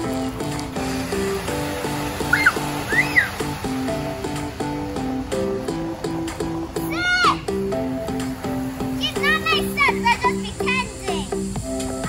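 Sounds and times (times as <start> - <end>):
bouncy background music: 0.0 - 12.0
high squeals: 2.2 - 3.5.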